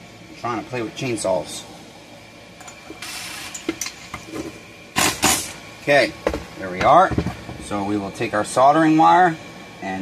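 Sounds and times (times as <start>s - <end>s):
cordless driver bursts: 5.0s - 5.6s.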